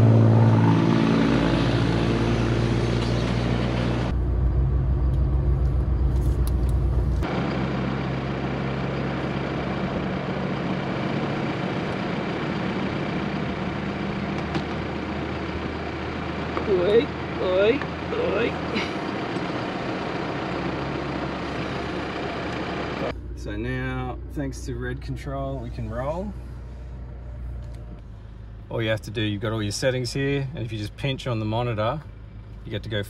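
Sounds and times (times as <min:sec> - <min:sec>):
road and wind noise: 0:00.0 - 0:33.0.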